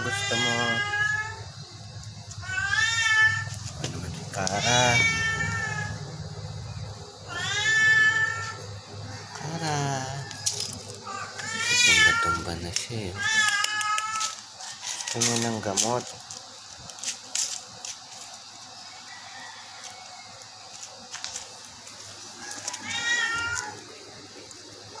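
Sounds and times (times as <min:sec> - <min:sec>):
cat meowing: 0:00.0 - 0:01.4, 0:02.4 - 0:03.6, 0:04.4 - 0:06.1, 0:07.3 - 0:08.7, 0:10.1 - 0:14.4, 0:22.4 - 0:23.8.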